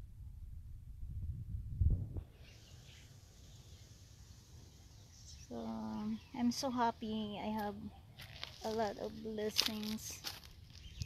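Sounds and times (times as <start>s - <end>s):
low rumble: 0.0s - 2.4s
steady high hiss: 2.2s - 7.2s
woman speaking: 5.5s - 7.9s, 8.6s - 10.3s.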